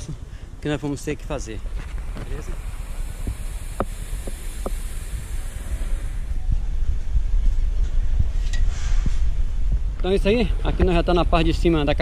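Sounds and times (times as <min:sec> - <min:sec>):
wind buffeting microphone: 0:01.6 - 0:12.0.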